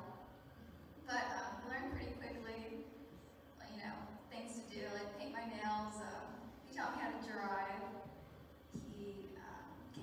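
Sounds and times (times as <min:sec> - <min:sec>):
woman speaking through pa system: 0:08.8 - 0:10.0.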